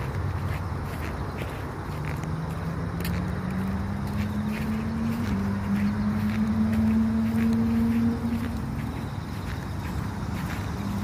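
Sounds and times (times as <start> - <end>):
vehicle engine hum rising: 0.0 - 11.0.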